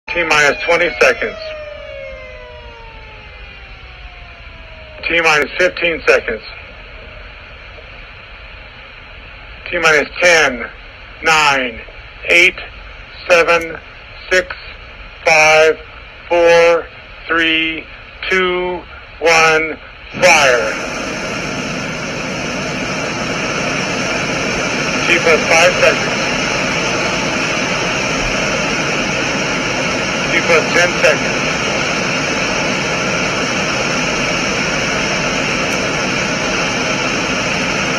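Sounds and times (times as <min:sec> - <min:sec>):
warning siren falling tones: 0:00.0 - 0:08.2
steady hiss: 0:04.8 - 0:37.9.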